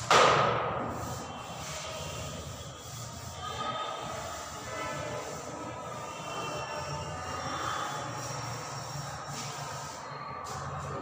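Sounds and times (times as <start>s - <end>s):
duster rubbing on blackboard: 0.8s - 11.0s.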